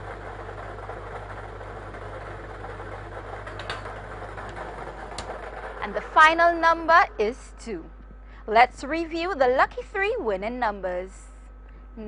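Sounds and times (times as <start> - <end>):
machine low hum: 0.0 - 12.0.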